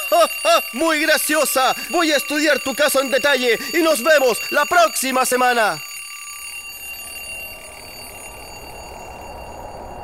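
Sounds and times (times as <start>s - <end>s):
alarm clock ringing: 0.0s - 10.0s
low rumble: 7.0s - 10.0s.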